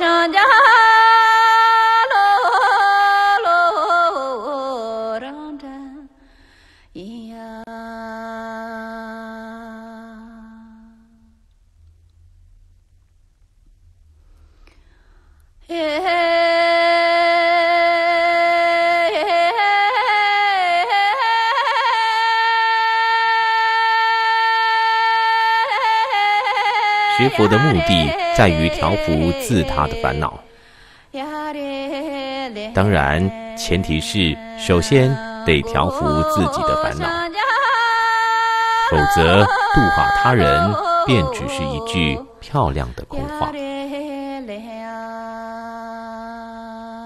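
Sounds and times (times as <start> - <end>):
person singing a slow mantra: 7.0 - 11.4, 15.7 - 30.6, 31.2 - 47.0
person singing a long note: 27.0 - 30.5, 32.7 - 37.4, 38.8 - 43.9.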